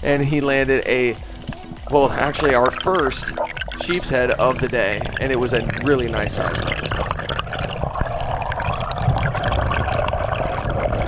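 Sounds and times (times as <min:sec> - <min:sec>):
water rushing and bubbling: 0:00.9 - 0:11.0.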